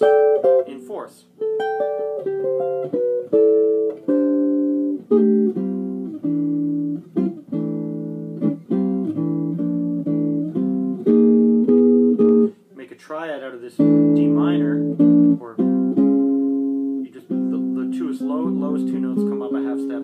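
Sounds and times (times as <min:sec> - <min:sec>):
electric guitar chords and licks: 0:00.0 - 0:12.6, 0:13.8 - 0:20.0.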